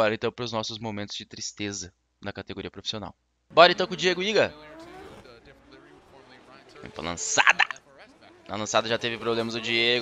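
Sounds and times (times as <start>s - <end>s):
commentator speaking: 0.0s - 10.0s
car engine noise: 3.5s - 10.0s.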